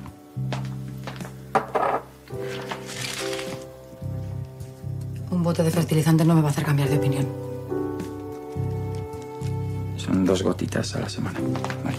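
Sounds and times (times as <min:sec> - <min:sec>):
soft background music: 0:00.0 - 0:11.9
glass bottle knocking on desk: 0:01.5 - 0:02.1.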